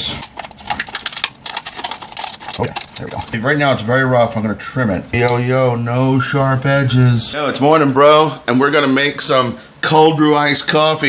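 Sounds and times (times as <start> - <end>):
plastic cup crackling: 0.0 - 3.4.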